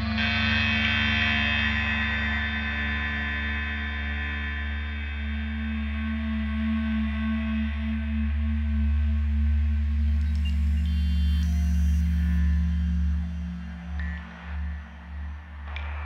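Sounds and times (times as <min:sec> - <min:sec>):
deep sustained synth drone: 0:00.0 - 0:16.0.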